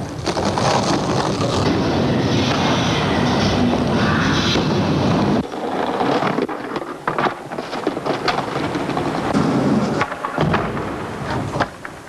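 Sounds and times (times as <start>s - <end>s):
skateboard wheels rolling: 0.0s - 12.0s
skateboard clacks: 5.4s - 12.0s.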